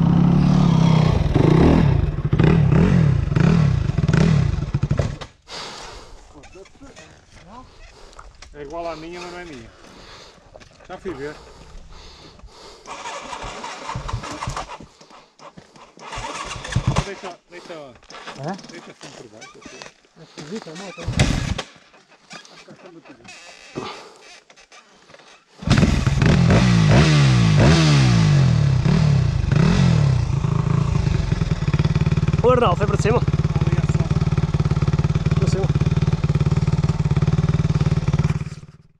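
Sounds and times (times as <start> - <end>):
dirt bike engine starting: 0.1 - 18.5, 20.3 - 24.3, 25.0 - 38.9.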